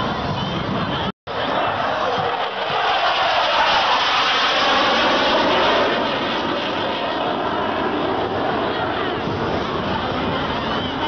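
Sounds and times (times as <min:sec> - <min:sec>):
jet engine roaring fly-past: 0:00.0 - 0:11.0.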